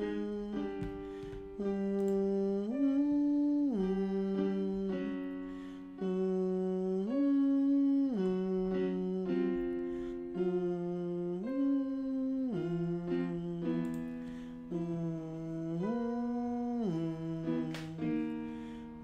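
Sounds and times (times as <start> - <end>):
man humming vocal warm-up: 0.0 - 1.0, 1.6 - 5.4, 6.0 - 14.1, 14.7 - 18.4.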